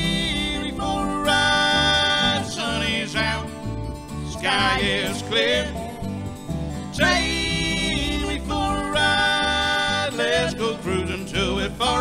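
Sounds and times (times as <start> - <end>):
person singing: 0.0 - 3.6, 7.0 - 12.0
acoustic guitar: 0.0 - 12.0
upright bass: 0.0 - 12.0.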